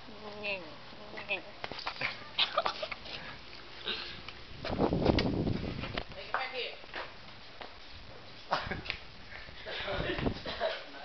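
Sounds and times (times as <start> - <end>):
rumbling rustle: 1.8 - 6.3.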